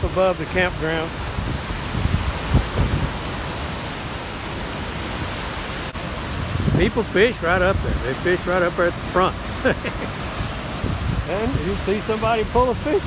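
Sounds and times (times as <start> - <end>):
rushing churning whitewater: 0.0 - 13.0.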